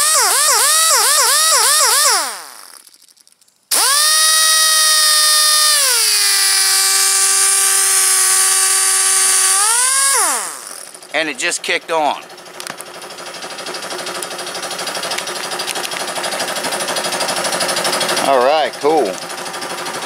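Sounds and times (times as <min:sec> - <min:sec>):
pneumatic disc sander whine: 0:00.0 - 0:03.1, 0:03.7 - 0:11.1.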